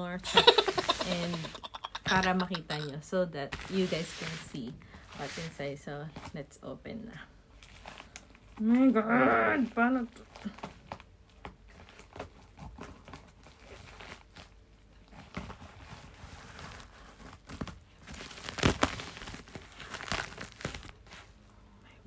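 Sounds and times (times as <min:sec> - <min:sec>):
plastic crinkling: 0:10.1 - 0:21.3.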